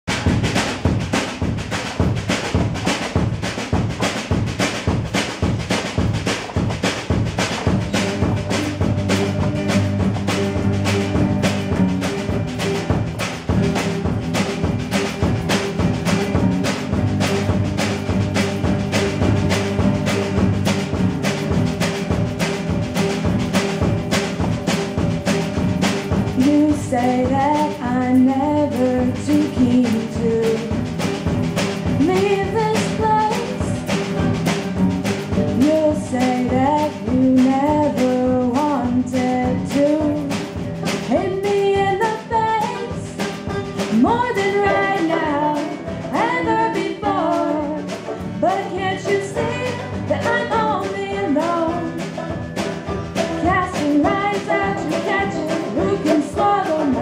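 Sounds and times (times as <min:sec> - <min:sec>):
acoustic guitar: 0:00.0 - 0:57.0
banjo strumming: 0:00.0 - 0:57.0
quick drum beat: 0:00.0 - 0:57.0.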